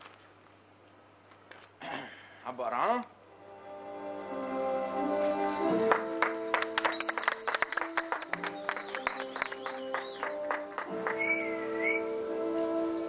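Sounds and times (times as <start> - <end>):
music with long held notes: 3.3 - 13.0
people clapping: 5.6 - 12.0.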